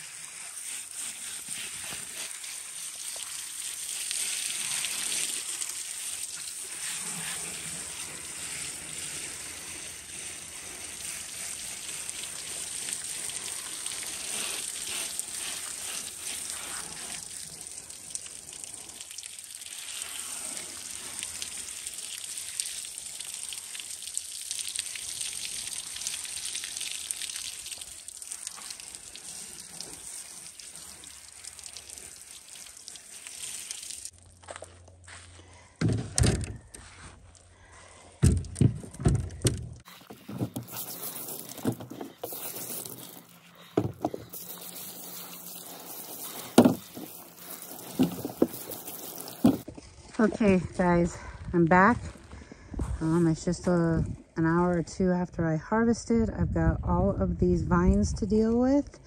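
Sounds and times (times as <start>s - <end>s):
hose spray pattering on potatoes: 0.0s - 34.2s, 39.8s - 49.7s.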